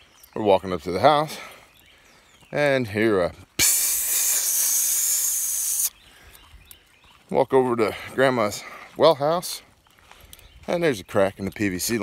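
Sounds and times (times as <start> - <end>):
loud steady hiss: 3.6 - 5.9.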